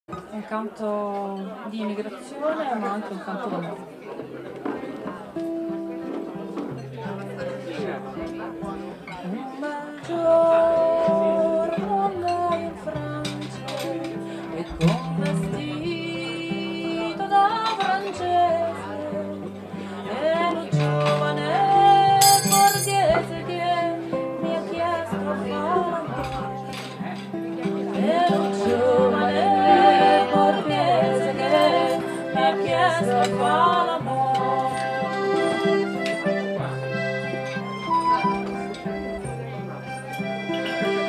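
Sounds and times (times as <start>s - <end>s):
acoustic guitar: 3.6s - 41.0s
woman singing: 9.2s - 26.7s, 27.9s - 35.5s
accordion: 10.4s - 41.0s.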